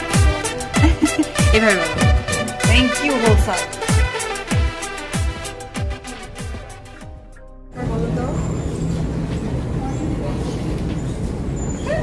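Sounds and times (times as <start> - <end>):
people talking: 0.9 - 3.7, 7.8 - 10.9
low rumble of busy hall: 7.7 - 12.0.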